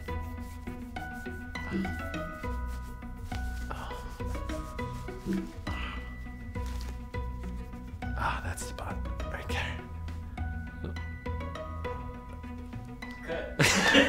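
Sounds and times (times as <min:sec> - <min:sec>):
fingernails scratching skin and fabric: 0:00.0 - 0:05.7
soft background music: 0:00.0 - 0:14.0.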